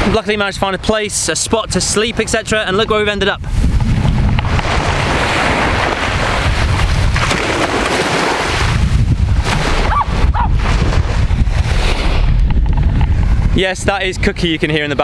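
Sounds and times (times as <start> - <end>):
wind buffeting microphone: 0.0 - 15.0
small waves washing on sand: 4.4 - 12.2
dog barking faintly: 9.8 - 10.6.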